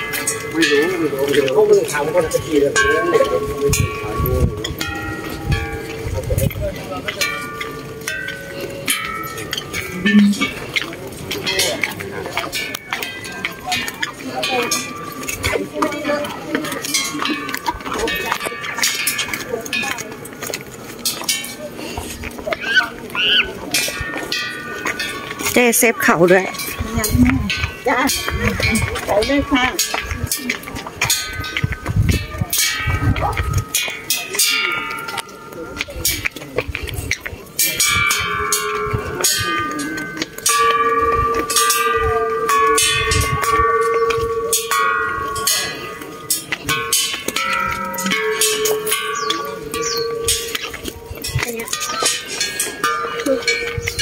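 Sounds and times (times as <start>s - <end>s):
small bells struck and ringing: 0.0s - 54.0s.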